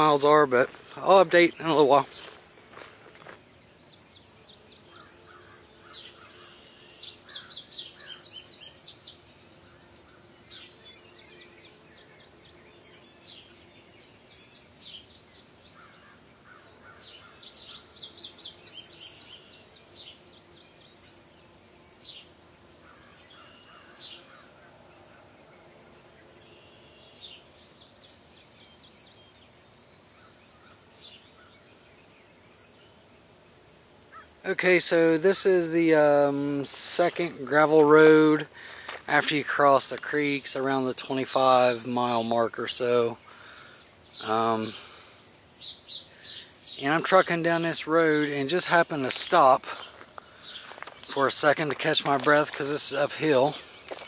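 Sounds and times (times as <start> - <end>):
high-pitched insect drone: 0.0 - 28.8, 34.1 - 54.0.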